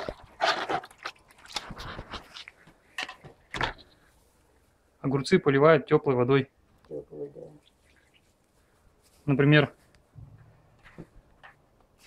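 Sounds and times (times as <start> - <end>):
water splashing in a bucket: 0.0 - 2.6.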